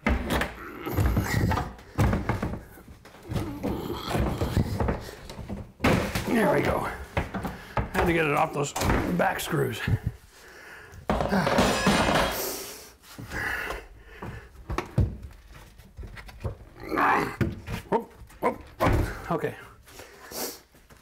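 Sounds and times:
knocks and thunks: 0.0s - 9.3s, 11.0s - 12.4s, 17.4s - 19.3s.

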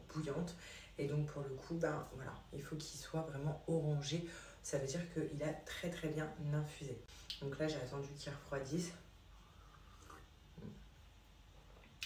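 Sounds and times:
tea sipped from a mug: 9.6s - 10.3s.

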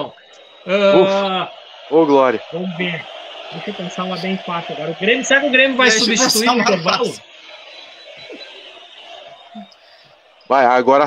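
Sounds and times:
soft indistinct voices: 2.2s - 5.0s, 5.7s - 7.4s, 9.6s - 10.0s.

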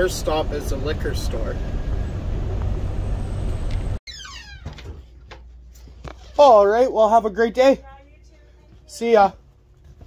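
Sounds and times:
short falling squeal: 3.0s - 4.7s.

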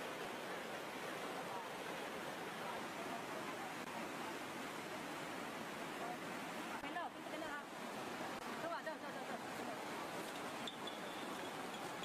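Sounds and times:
floodwater river rushing: 0.0s - 12.0s.

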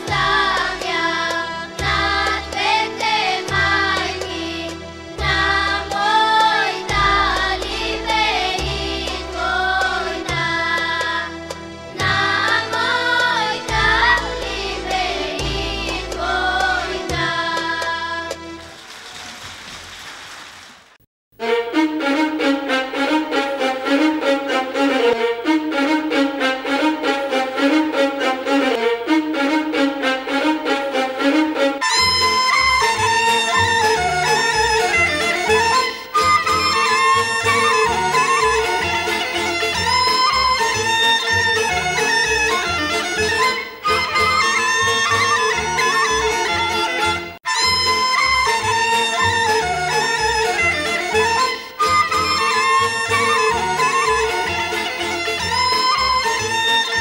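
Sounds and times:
audience applauding: 18.6s - 21.0s
bagpipe melody with drone: 31.8s - 57.0s.

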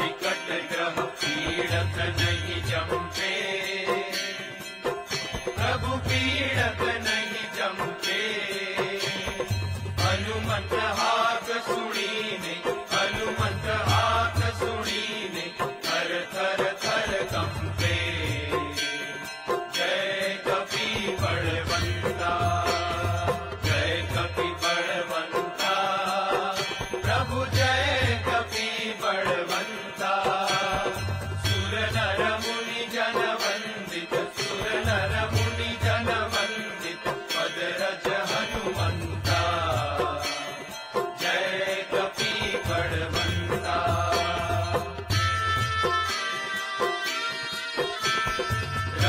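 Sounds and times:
voices singing a hymn: 0.0s - 46.6s
bells and percussion strikes: 0.0s - 49.0s
instrumental accompaniment: 0.0s - 49.0s.

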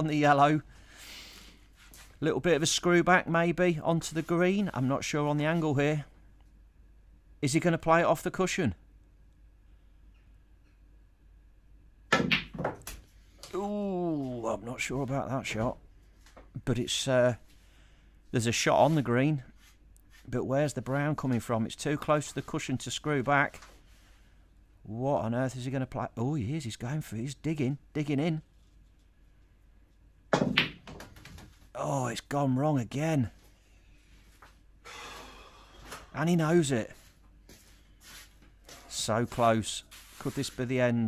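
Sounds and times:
balls knocking together: 12.1s - 13.0s.

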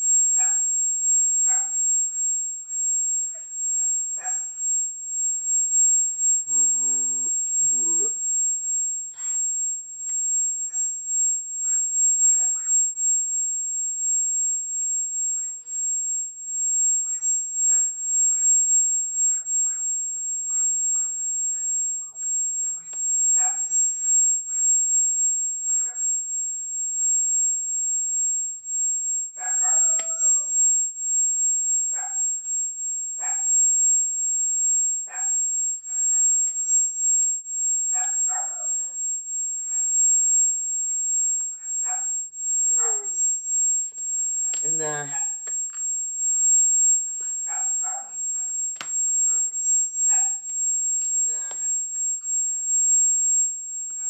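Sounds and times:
high-pitched electronic whine: 0.0s - 54.0s
faint short high beep: 5.5s - 8.2s.

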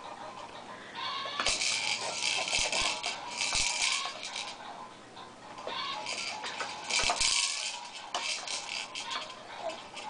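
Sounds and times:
plastic beads rattling: 1.4s - 4.6s, 5.8s - 10.0s.

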